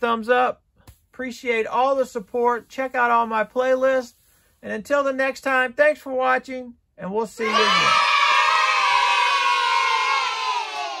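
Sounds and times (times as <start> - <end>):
crowd cheering and shouting: 7.4 - 11.0.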